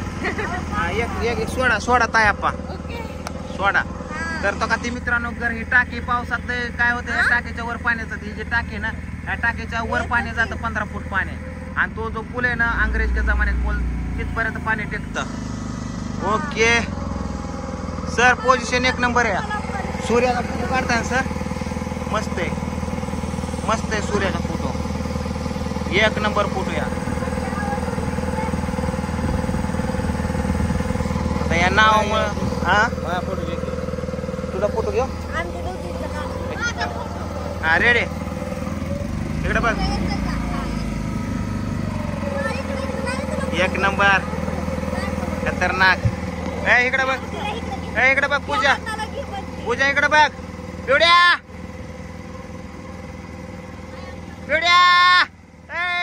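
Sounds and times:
boat engine droning: 0.0s - 56.0s
voices talking: 0.0s - 56.0s
high voice calling out: 4.0s - 4.6s.

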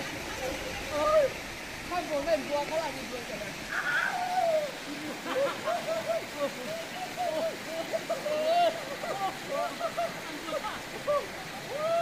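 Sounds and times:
water rushing down rock: 0.0s - 12.0s.

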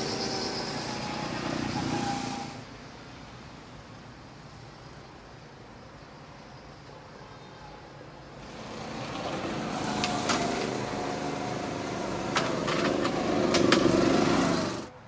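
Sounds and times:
go-kart engine running: 0.0s - 2.6s, 8.4s - 14.9s.

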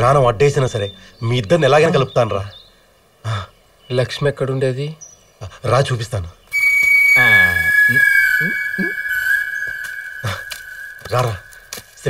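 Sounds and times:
high-pitched whistle-like tone: 6.5s - 12.0s
falling voice-like cry: 6.6s - 11.8s.

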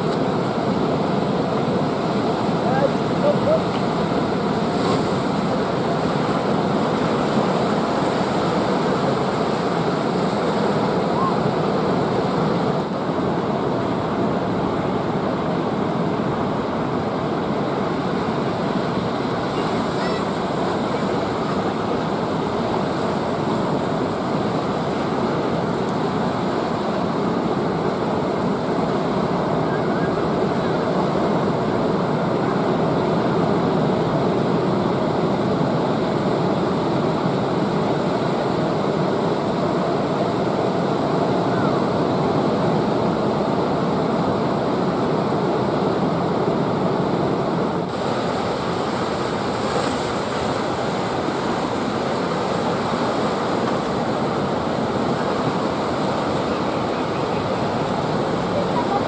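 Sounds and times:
ocean waves breaking: 0.0s - 59.0s.

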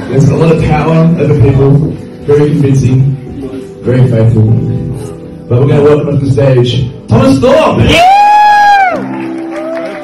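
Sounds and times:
music with held notes: 0.0s - 8.0s
high whoop: 7.8s - 10.0s
audience cheering and clapping: 7.9s - 10.0s.

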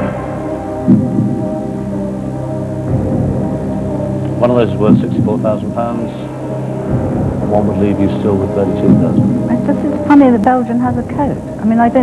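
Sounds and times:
low heartbeat-like pulse: 0.0s - 11.7s
synthesizer drone: 0.0s - 12.0s.

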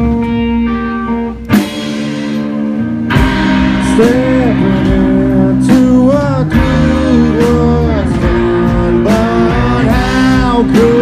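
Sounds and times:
electric guitars: 0.0s - 11.0s
live rock band: 0.0s - 11.0s
drum hits: 1.5s - 11.0s.

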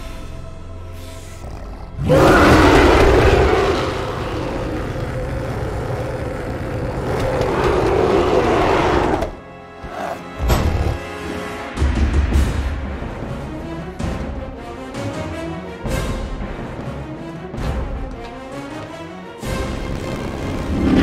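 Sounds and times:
orchestral film score: 0.0s - 21.0s
gorilla roar: 1.3s - 11.0s.

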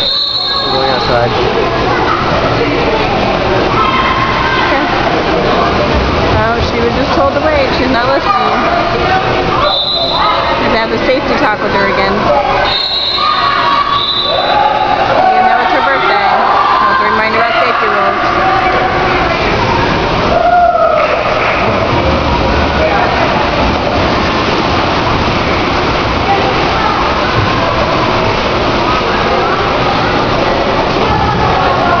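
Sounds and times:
voices echoing in hall: 0.0s - 32.0s
water splashing: 0.0s - 32.0s.

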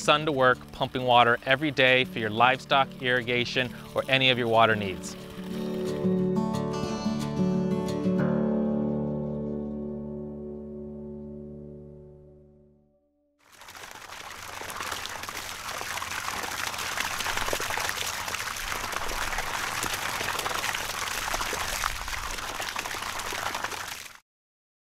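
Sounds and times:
water pouring and splashing: 0.0s - 6.2s, 13.4s - 24.2s.

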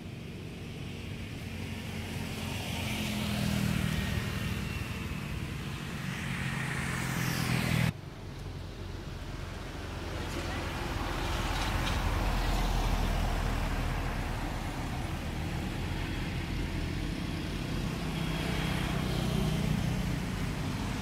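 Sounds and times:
engine hum: 0.0s - 21.0s
vehicle engine rumble passing: 0.0s - 21.0s.

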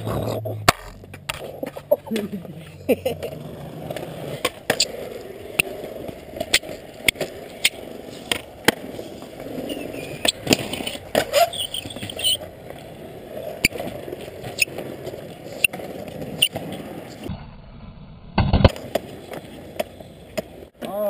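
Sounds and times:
skateboard deck clacks: 0.0s - 17.2s, 18.4s - 21.0s
skateboard grinding on concrete: 0.0s - 17.3s, 18.4s - 20.8s
skateboard wheels rolling on asphalt: 0.0s - 21.0s.

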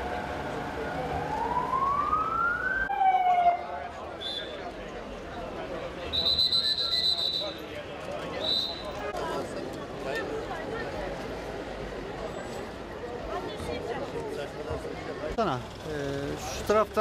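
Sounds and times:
emergency vehicle siren: 0.0s - 3.8s
crowd chatter: 0.0s - 17.0s
shrill whistle blasts: 4.2s - 4.6s, 6.1s - 7.6s, 8.4s - 9.0s.

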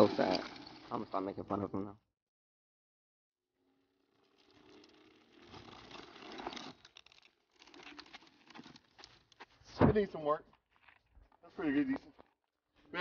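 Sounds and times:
scooter tyres skidding on gravel: 4.2s - 9.6s
gravel crunching: 4.4s - 12.9s.

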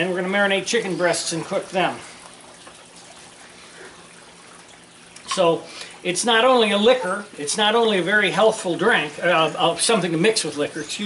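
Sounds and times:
juice trickling: 0.0s - 11.0s.

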